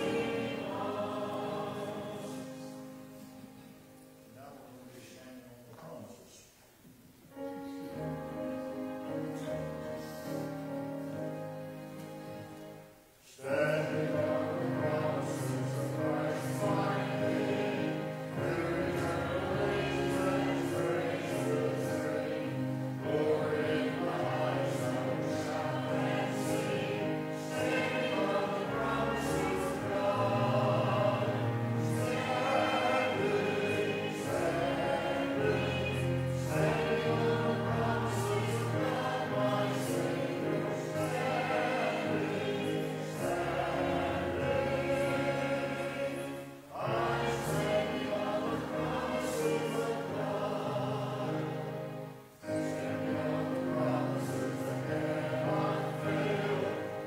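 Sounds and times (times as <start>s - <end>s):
congregation singing a hymn: 0.0s - 6.2s, 7.3s - 57.0s.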